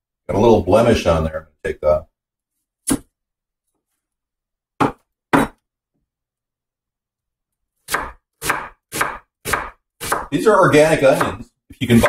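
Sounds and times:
knife chopping onto cutting board: 4.8 - 5.6, 7.9 - 10.3.

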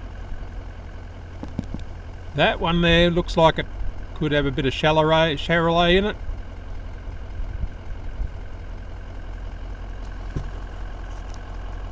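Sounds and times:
vehicle engine idling: 0.0 - 11.9.

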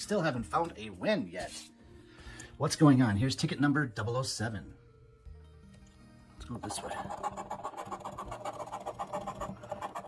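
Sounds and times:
coin scratching lottery ticket: 6.6 - 10.0.

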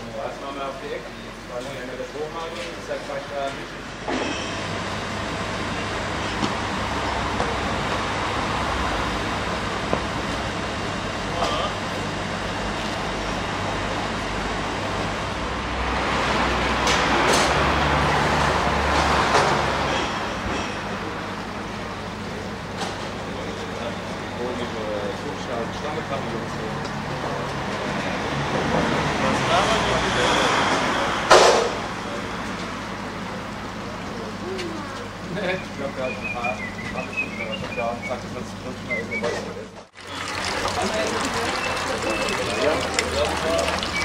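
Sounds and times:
truck engine running: 3.7 - 44.0.

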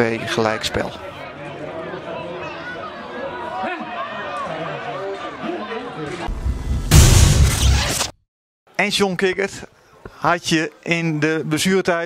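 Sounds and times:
players calling and talking: 0.0 - 6.3
booming swoosh sound effect: 6.3 - 8.1.

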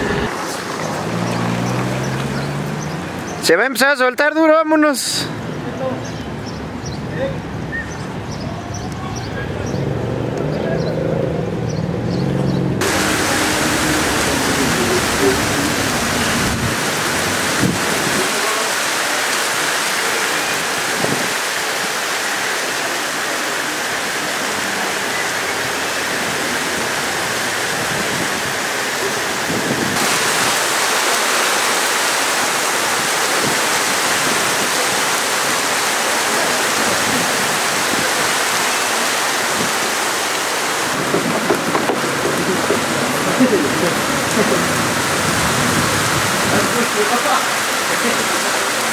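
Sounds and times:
heavy rain on pavement: 0.0 - 10.6, 12.8 - 48.9.

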